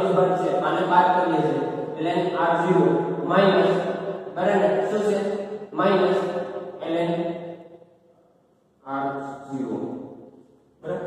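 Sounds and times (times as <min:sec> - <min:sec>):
man speaking slowly: 0:08.8 - 0:09.8.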